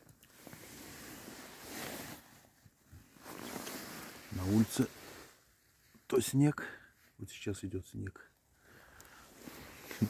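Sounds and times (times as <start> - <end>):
fabric rustling: 0.2 - 6.0.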